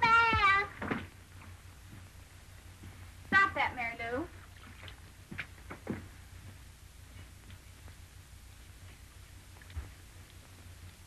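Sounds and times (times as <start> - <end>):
child exclaiming excitedly: 0.0 - 0.7.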